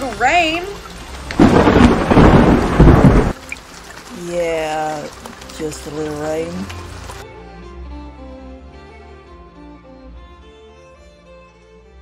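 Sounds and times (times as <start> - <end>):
rain: 0.0 - 7.9
loud thunderclap: 1.4 - 3.4.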